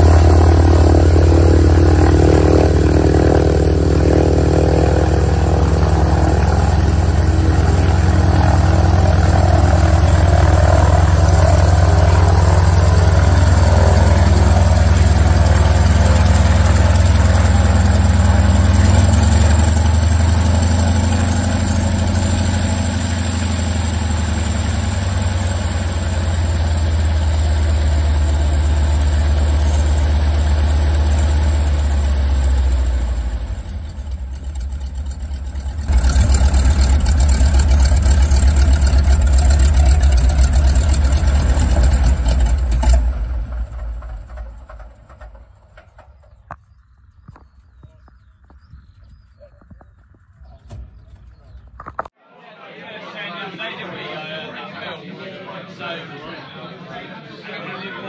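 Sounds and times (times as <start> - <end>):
radial aircraft engine idling: 0.0 - 49.4.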